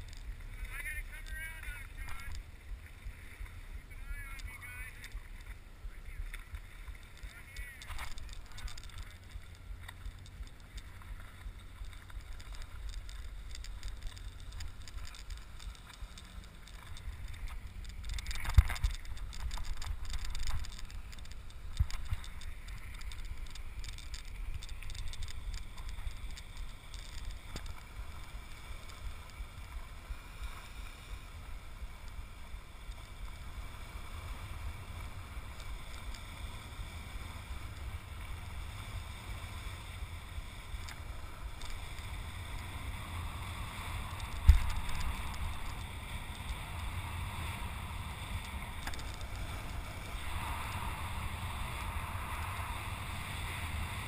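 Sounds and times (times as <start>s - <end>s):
water rushing: 0.0s - 54.0s
wind on microphone: 31.4s - 54.0s.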